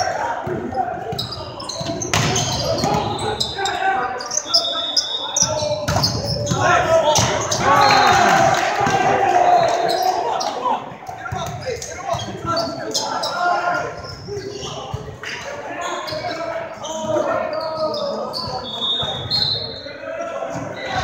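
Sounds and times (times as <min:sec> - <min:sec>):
players calling out: 0:00.0 - 0:21.0
sneakers squeaking on floor: 0:00.6 - 0:08.4, 0:09.5 - 0:21.0.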